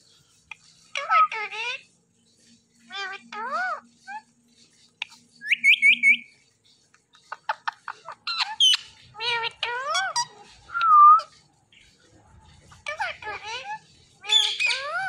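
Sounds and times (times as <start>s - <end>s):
parakeets chirping and squawking: 0.1s - 15.0s.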